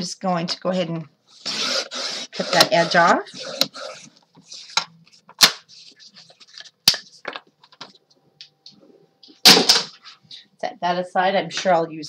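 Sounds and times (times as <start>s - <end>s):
paper trimmer snapping: 1.5s - 4.0s.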